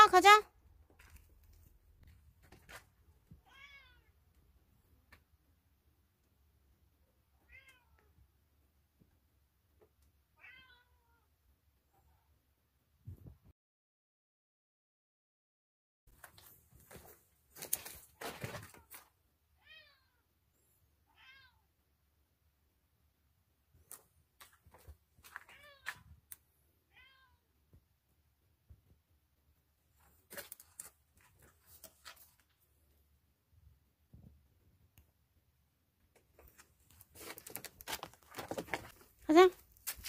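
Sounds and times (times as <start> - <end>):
cat meowing softly: 3.4 - 4.2, 7.3 - 8.2, 10.3 - 12.4, 19.6 - 20.3, 21.0 - 21.7, 25.4 - 26.1, 26.9 - 27.6
rustling: 30.0 - 32.7, 36.2 - 40.0.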